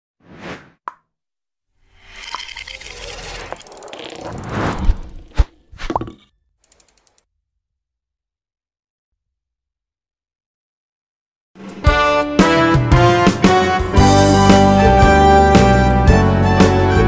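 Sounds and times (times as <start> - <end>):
click: 6.6 - 7.2.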